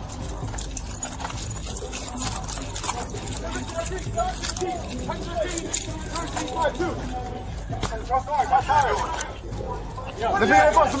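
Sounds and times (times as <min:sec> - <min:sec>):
metallic jangling: 0:00.0 - 0:11.0
raised voices calling: 0:00.1 - 0:11.0.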